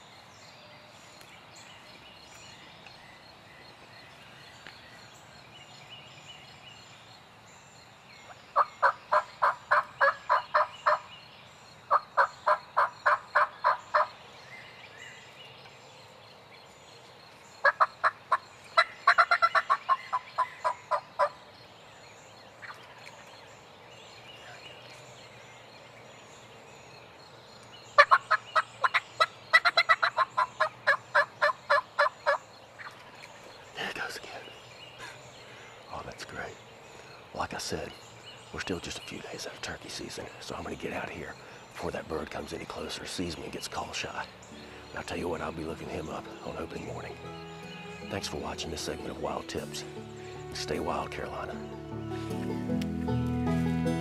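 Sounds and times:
turkey gobbling: 8.6 - 11.0, 12.2 - 14.1, 17.6 - 21.3, 28.0 - 33.0.

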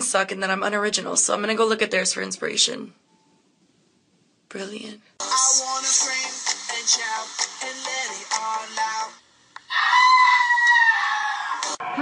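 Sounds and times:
high-pitched animal scream: 9.7 - 11.6.

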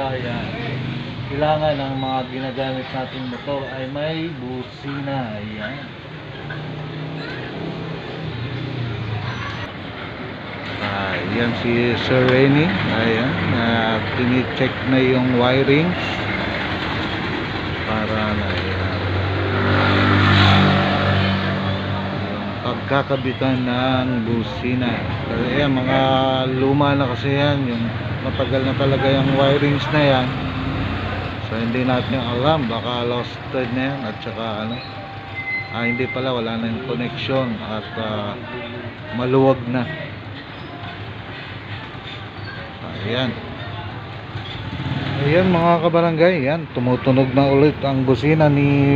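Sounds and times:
vehicle engine humming: 0.0 - 48.9.

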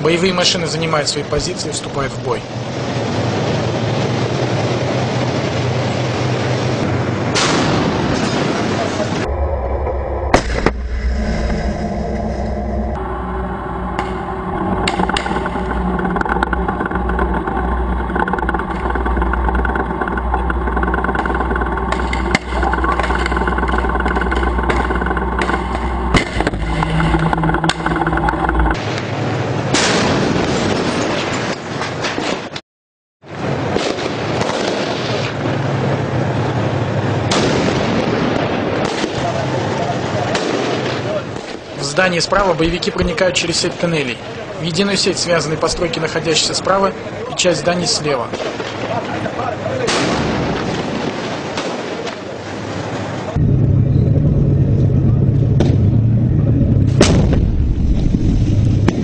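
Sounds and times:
tank diesel engine running: 1.2 - 29.8, 52.4 - 59.0
sharp bangs: 7.3 - 31.4
battle sounds with bangs: 48.1 - 52.8.

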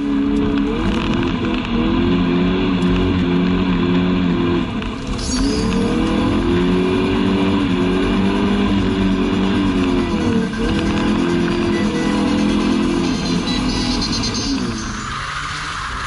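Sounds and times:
car engine at high revs: 0.0 - 16.0.

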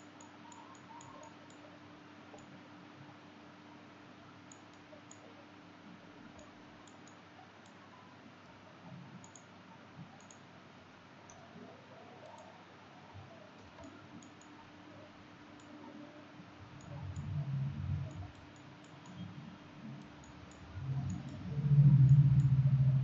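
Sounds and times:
computer mouse clicks: 0.0 - 1.7, 2.3 - 2.5, 4.5 - 5.3, 6.4 - 7.8, 9.1 - 10.5, 11.2 - 11.5, 12.2 - 12.6, 13.6 - 14.6, 15.6 - 16.0, 16.7 - 19.3, 19.9 - 23.0
low steady hiss: 0.0 - 23.0.

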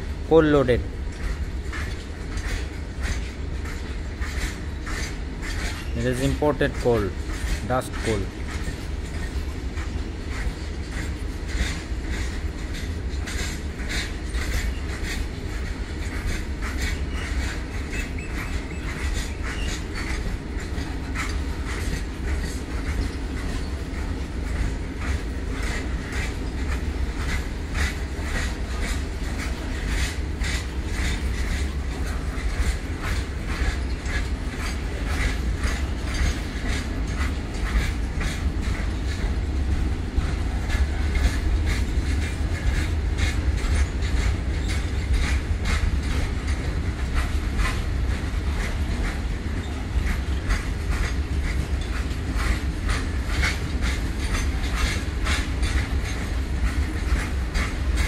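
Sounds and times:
freight train rumbling past: 0.0 - 58.0
wheels clacking over rail joints: 0.0 - 58.0.

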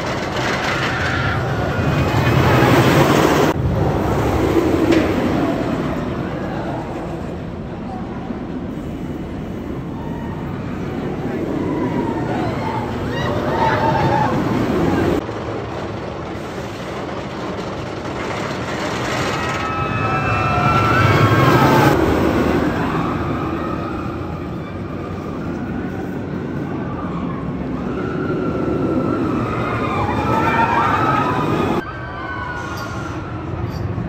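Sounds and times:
roller coaster rumbling on track: 0.0 - 34.0
riders screaming: 9.9 - 15.2, 19.2 - 24.7, 26.8 - 33.5.

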